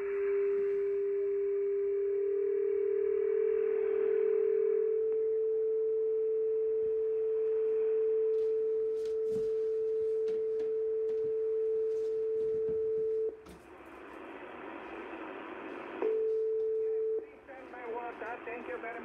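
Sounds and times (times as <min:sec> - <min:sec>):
radio receiver steady whistle tone: 0:00.0 - 0:19.0
faint static clicks: 0:03.8 - 0:05.8, 0:06.8 - 0:19.0.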